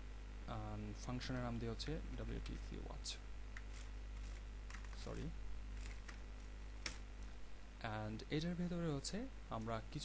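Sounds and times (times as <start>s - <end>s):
steady low hum: 0.0s - 10.0s
computer keyboard keystrokes: 3.6s - 5.2s, 5.8s - 6.2s, 6.8s - 7.0s.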